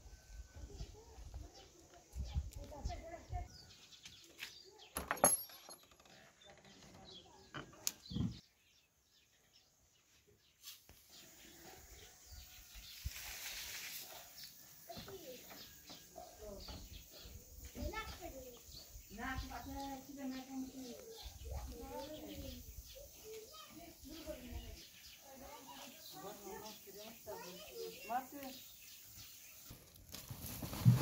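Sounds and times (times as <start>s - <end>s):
dry straw rustling: 12.7s - 14.6s, 29.7s - 31.0s.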